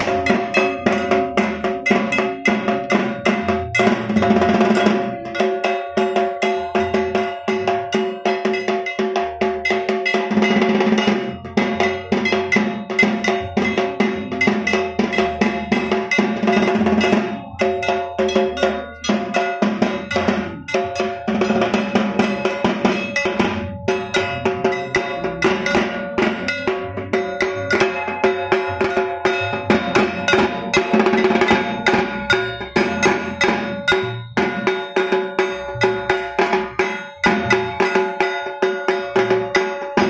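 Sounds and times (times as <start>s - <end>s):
drum beaten in fast rhythm: 0.0s - 40.0s
small gong struck rapidly: 0.0s - 40.0s.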